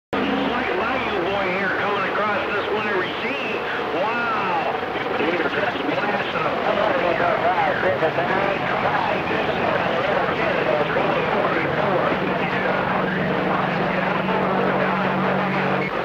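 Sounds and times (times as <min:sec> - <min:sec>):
garbled radio voices: 0:00.2 - 0:16.0
radio static: 0:00.2 - 0:16.0
steady low hum: 0:00.2 - 0:16.0.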